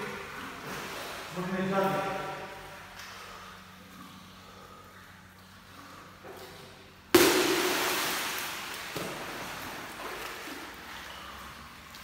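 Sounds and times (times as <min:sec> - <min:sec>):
churning water: 0:00.0 - 0:12.0
person splashing into pool: 0:07.1 - 0:12.0.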